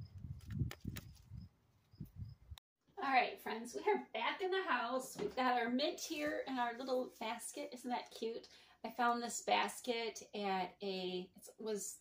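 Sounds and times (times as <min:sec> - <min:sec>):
microphone handling noise: 0:00.0 - 0:02.5
wind rumble: 0:00.0 - 0:02.6.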